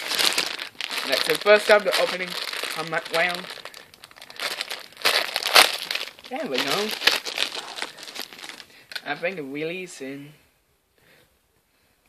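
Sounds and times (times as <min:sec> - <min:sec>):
packaging crinkling and rustling: 0:00.0 - 0:09.1.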